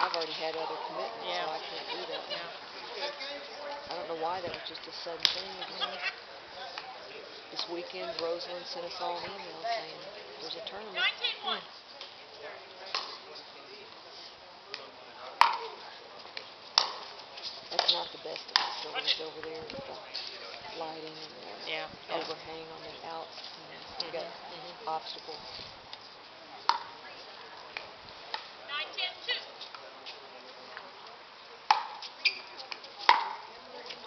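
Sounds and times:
paddle striking plastic ball: 33.1 - 33.4.

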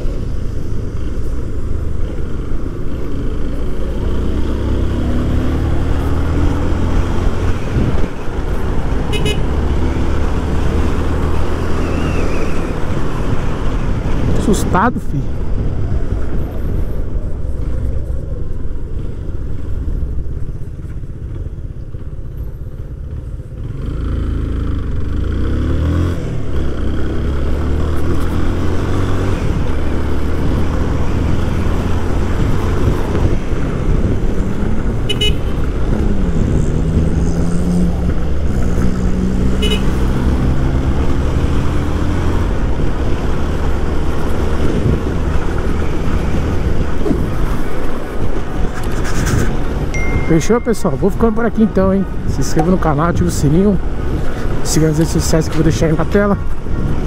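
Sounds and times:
traffic noise: 0.0 - 57.0
short high beeps: 49.9 - 50.9.

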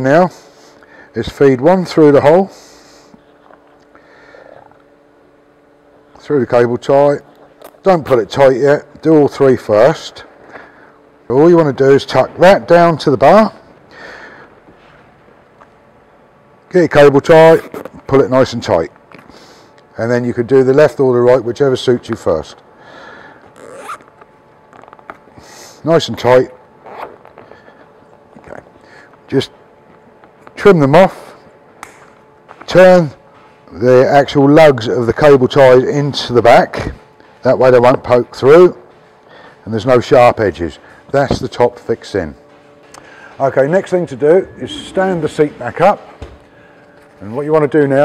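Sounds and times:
cable tie zip: 23.6 - 24.1
low hum: 40.5 - 48.0.

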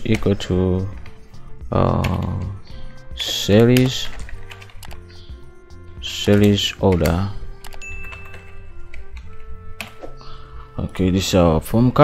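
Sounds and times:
keyboard keys clicking: 0.0 - 10.2
soft background music: 0.0 - 12.0.

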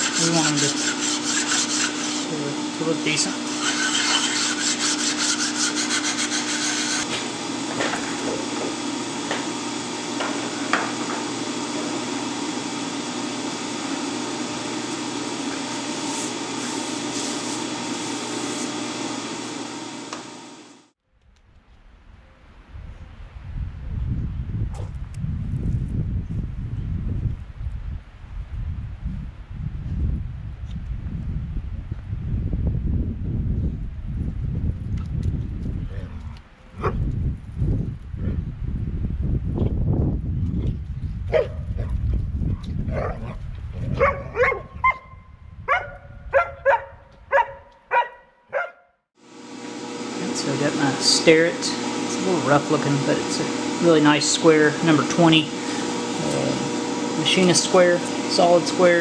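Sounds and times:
metal shaper scraping: 0.0 - 7.2, 14.9 - 19.6.

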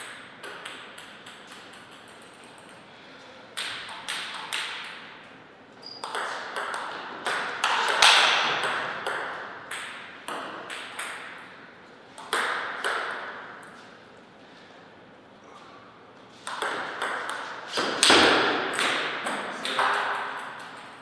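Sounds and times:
ping-pong ball knocking: 0.0 - 2.8, 3.6 - 5.0, 5.8 - 11.4, 12.2 - 13.4, 16.4 - 20.9.

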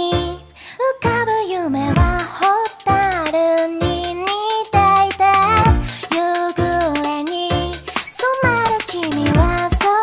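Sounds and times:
electronic pop music: 0.0 - 10.0.

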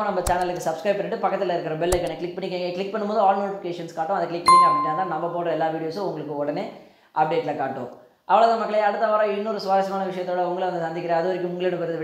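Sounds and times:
notification bell chime: 4.5 - 5.4.

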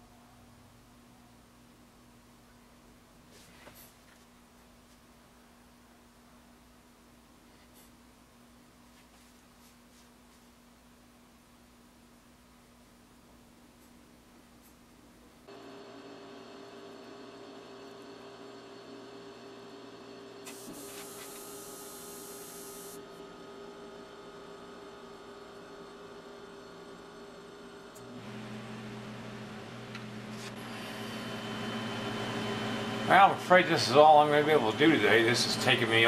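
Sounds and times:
room heater humming: 0.0 - 36.0.

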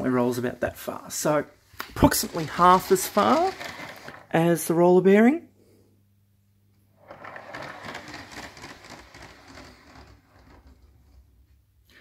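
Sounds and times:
toy train carriage rattling on track: 1.9 - 4.3, 7.1 - 11.2.

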